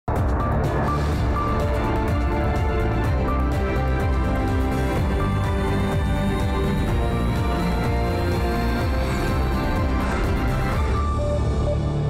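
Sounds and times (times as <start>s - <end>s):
news theme music with deep bass: 0.1s - 12.0s.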